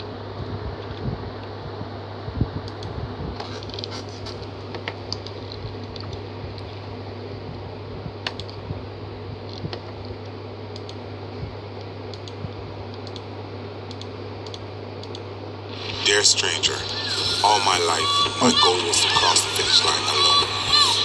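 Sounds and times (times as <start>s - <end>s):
steady low hum: 0.0s - 21.0s
computer keyboard key clicks: 8.2s - 8.6s.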